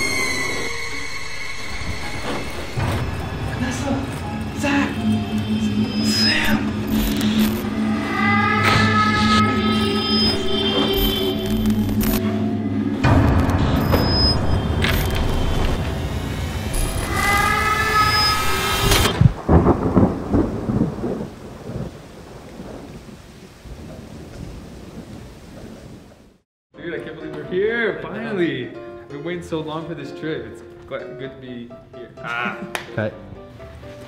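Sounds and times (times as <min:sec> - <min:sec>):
dark horror music: 0:00.0 - 0:20.4
low rumble: 0:00.0 - 0:21.4
thunder-like rumbles: 0:01.5 - 0:26.4.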